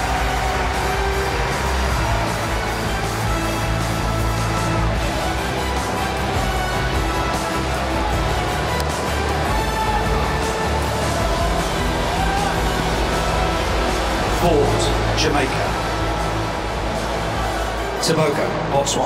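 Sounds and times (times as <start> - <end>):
music with deep bass: 0.0 - 19.0.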